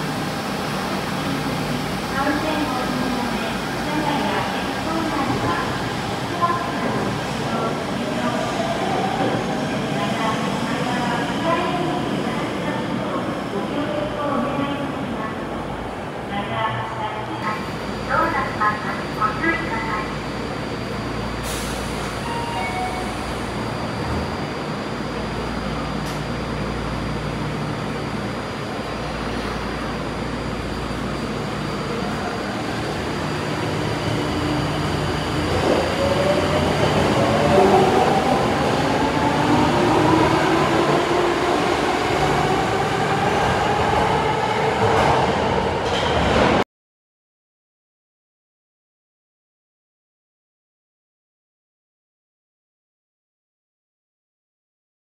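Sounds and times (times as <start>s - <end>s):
subway train rumble: 0.0s - 46.6s.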